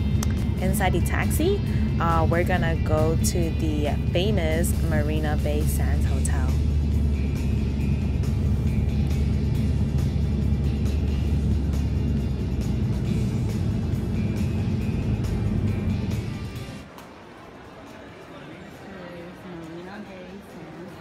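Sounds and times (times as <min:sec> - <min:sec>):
road and engine noise in car: 0:00.0 - 0:17.0
music playing: 0:00.0 - 0:17.6.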